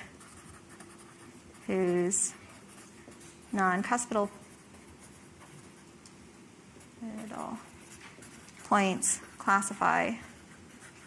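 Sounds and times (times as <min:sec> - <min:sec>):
marker scratching on paper: 0:00.0 - 0:05.9, 0:07.0 - 0:11.0.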